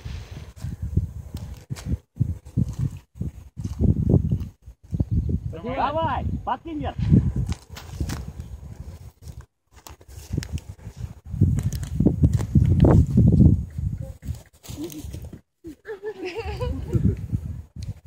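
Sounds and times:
wind buffeting microphone: 0.0 - 15.4, 16.2 - 18.0.

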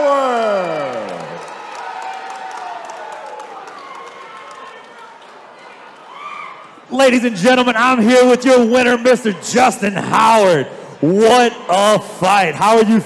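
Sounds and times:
crowd cheering and clapping: 0.0 - 6.9.

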